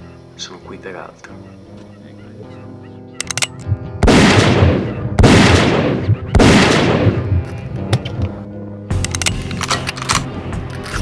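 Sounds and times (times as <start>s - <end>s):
background music: 0.0s - 11.0s
loud gunshots with echo: 4.0s - 7.5s.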